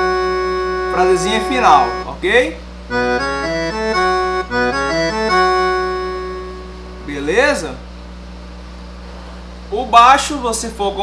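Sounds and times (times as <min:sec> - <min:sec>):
accordion melody: 0:00.0 - 0:02.2, 0:02.9 - 0:07.6.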